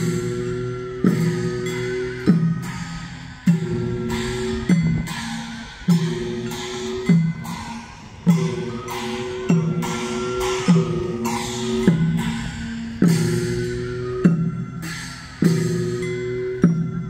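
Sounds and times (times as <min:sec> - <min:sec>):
drum and gong strokes: 0:00.0 - 0:17.0
wavering held wind tone: 0:00.0 - 0:17.0.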